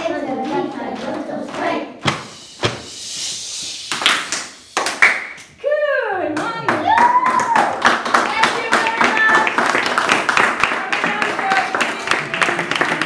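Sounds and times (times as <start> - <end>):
children's voices: 0.0 - 2.0
children clapping hands: 3.9 - 5.5, 6.4 - 13.0.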